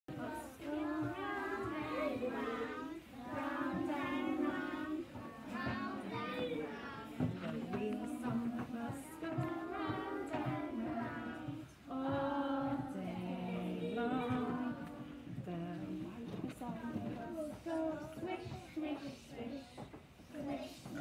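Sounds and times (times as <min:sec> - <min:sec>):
children singing together: 0:00.1 - 0:21.0.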